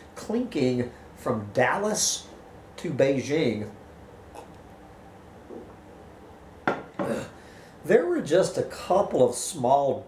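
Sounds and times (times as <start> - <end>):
mug set down clunk: 6.7 - 7.2.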